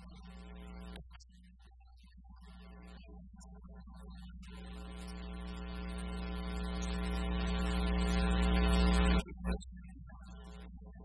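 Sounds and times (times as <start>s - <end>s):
droning tone with overtones: 0.0s - 11.0s
electrical hum: 4.2s - 11.0s.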